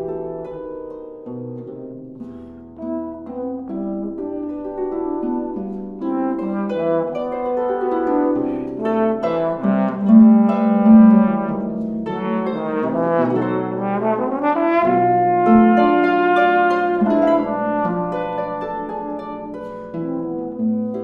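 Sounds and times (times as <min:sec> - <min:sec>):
plucked harp: 0:00.0 - 0:21.0
trombone melody: 0:02.3 - 0:21.0.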